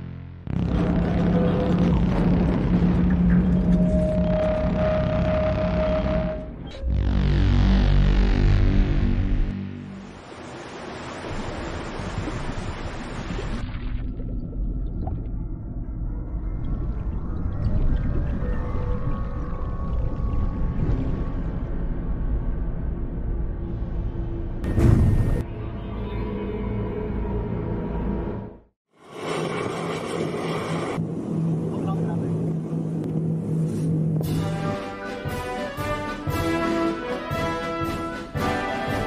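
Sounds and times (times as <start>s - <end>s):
dark music: 0.0s - 10.4s, 14.1s - 28.7s, 32.6s - 39.0s
boat engine humming: 0.5s - 7.0s
rushing water: 9.8s - 14.1s.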